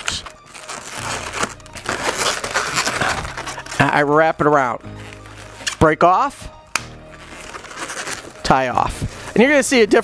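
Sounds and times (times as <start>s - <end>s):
balloons rubbing and rasping: 0.0s - 10.0s.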